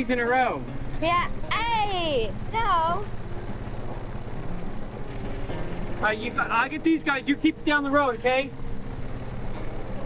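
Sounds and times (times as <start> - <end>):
small engine running at low revs: 2.4 - 10.0.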